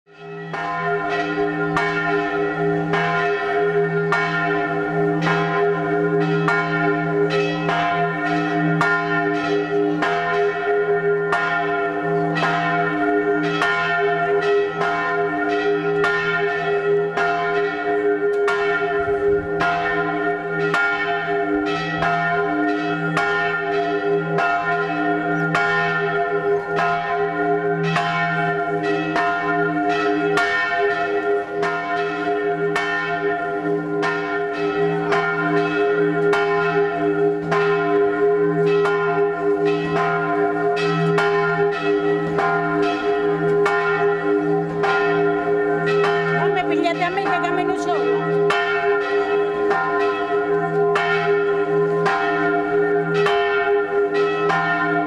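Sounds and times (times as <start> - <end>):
church bells pealing: 0.1 - 55.0.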